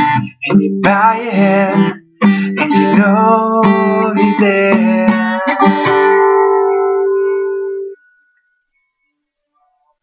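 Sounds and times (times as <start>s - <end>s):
acoustic guitar chord ringing: 0.0s - 9.7s.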